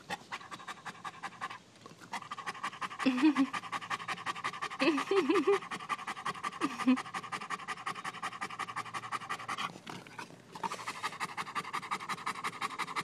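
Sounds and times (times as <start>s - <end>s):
dog panting: 0.0s - 13.0s.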